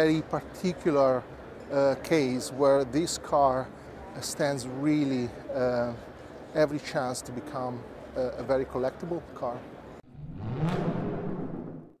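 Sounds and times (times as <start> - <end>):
low tone sweeping upward: 10.0 - 12.0.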